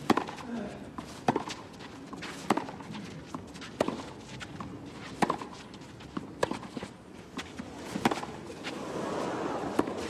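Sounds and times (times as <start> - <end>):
tennis racquet hitting ball: 0.0 - 0.4, 1.2 - 1.6, 5.2 - 5.6, 7.9 - 8.4, 9.6 - 10.0.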